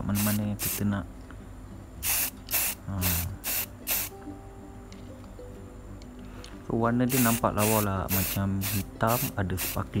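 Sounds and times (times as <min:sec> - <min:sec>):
spray paint can hissing: 0:00.1 - 0:00.8, 0:02.0 - 0:04.1, 0:07.1 - 0:09.9.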